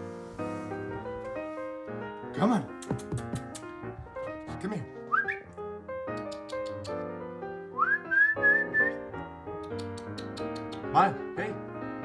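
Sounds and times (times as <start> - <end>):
background music: 0.0 - 12.0
person whistling rising note: 5.1 - 5.5, 7.8 - 9.1.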